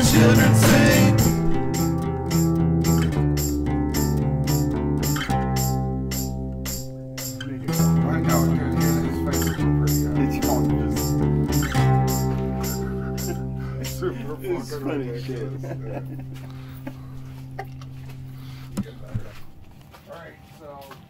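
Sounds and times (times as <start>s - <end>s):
instrumental rock music: 0.0s - 19.9s.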